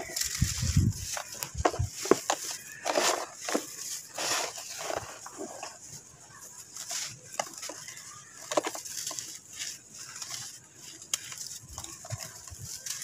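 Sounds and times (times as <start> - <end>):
sand cakes crunching by hand: 0.0 - 13.0
sand trickling: 0.0 - 13.0.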